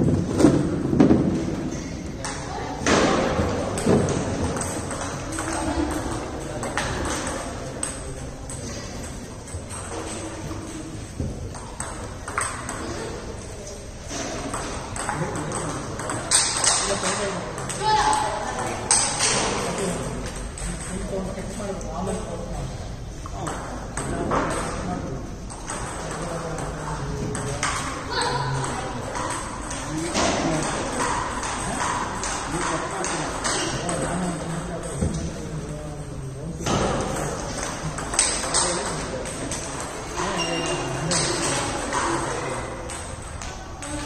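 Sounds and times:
background chatter: 0.0 - 44.0.

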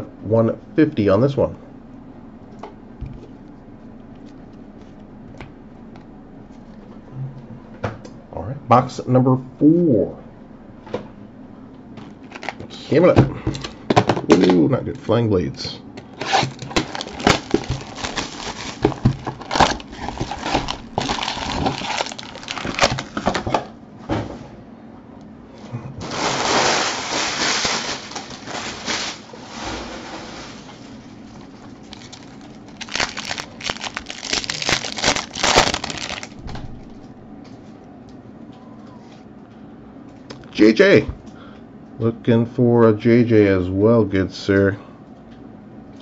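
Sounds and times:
card pack wrappers ripping: 12.2 - 12.7, 16.2 - 23.5, 26.0 - 29.3, 31.3 - 36.4
plastic wrap and cardboard crinkling: 12.2 - 12.7, 16.2 - 23.6, 26.0 - 37.0.

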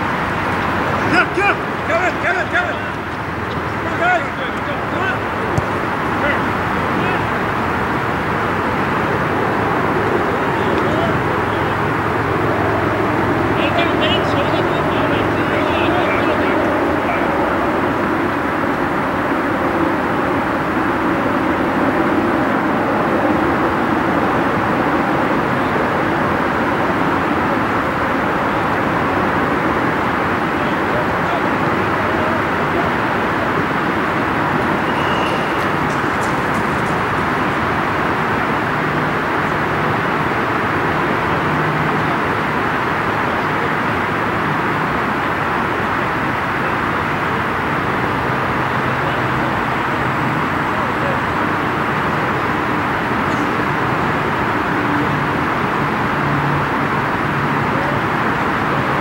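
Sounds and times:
players calling out: 0.0 - 18.2, 25.2 - 40.3
road traffic roar: 0.0 - 59.0.

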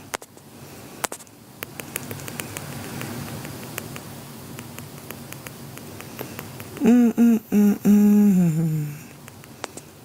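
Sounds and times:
woman humming: 6.8 - 9.2.

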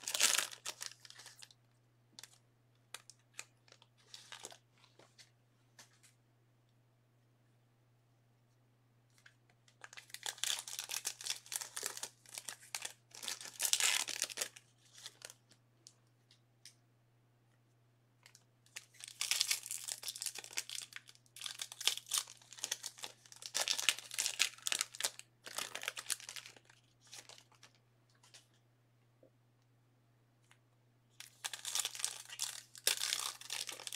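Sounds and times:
plastic wrapping crinkling: 0.0 - 1.6, 2.2 - 4.6, 9.7 - 15.6, 18.2 - 28.5, 31.2 - 33.9
low electrical hum: 0.0 - 33.9.

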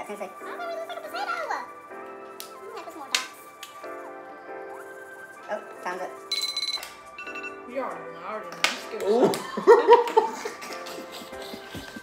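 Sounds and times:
background music: 0.0 - 12.0
timer alarm beeping: 6.3 - 7.7
voices and laughter: 9.1 - 12.0.

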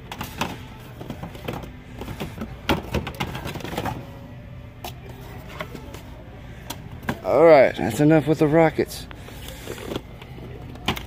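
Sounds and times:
store background hum: 0.0 - 11.0.

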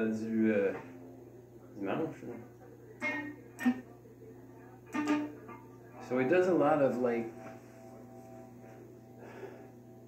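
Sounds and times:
electric guitar note plucked: 3.0 - 3.9, 4.8 - 10.0.

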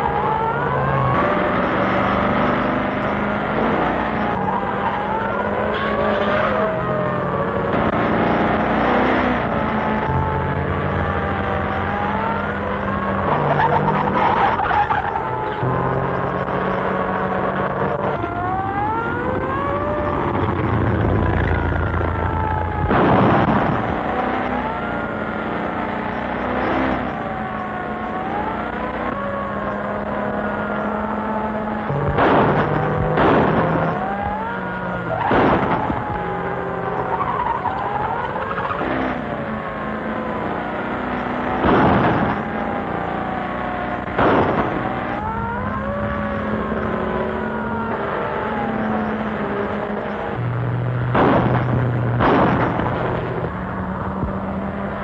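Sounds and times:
car engines running: 0.0 - 55.0
sirens wailing: 0.0 - 55.0
sharp bangs: 22.8 - 24.3, 31.9 - 34.5, 35.1 - 36.3, 41.4 - 42.8, 44.0 - 45.2, 51.0 - 53.6.

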